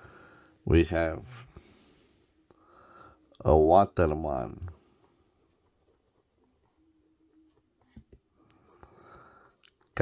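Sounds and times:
pen nib scratching on paper: 5.3s - 10.0s.

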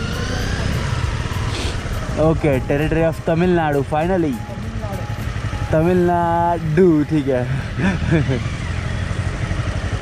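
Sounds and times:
motorcycle engine running: 0.0s - 10.0s
road noise: 0.0s - 10.0s.

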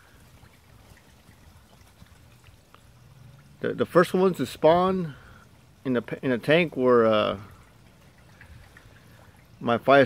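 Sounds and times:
water trickling in a pond: 0.0s - 10.0s.

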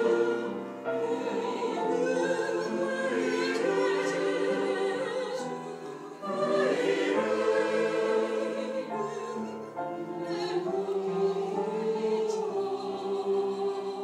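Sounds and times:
church choir singing: 0.0s - 14.0s.

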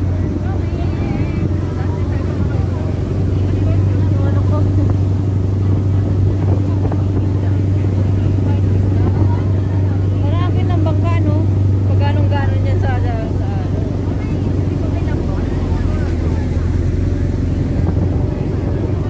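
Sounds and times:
boat engine droning: 0.0s - 19.0s
voices talking: 0.0s - 19.0s
water rushing along hull: 0.0s - 19.0s.

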